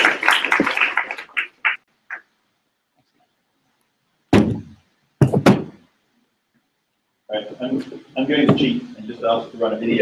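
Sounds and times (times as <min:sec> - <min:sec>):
sharp knocks: 0:04.3 - 0:05.9.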